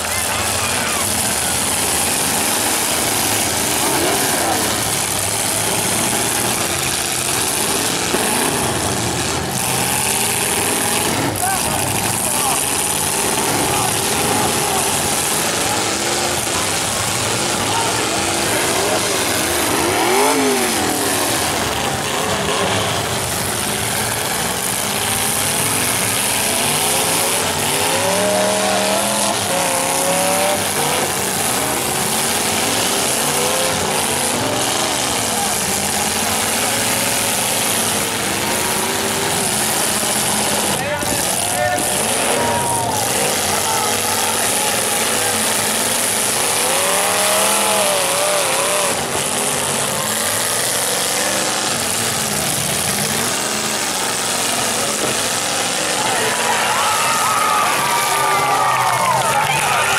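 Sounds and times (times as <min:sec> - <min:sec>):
car engines revving: 0:00.0 - 0:59.9
crowd voices: 0:00.0 - 0:59.9.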